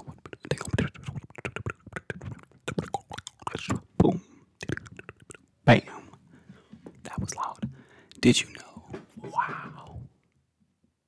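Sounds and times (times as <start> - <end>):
mouth clicks and pops: 0.0 - 5.7, 6.9 - 10.1
breathy voice bursts: 0.0 - 10.1.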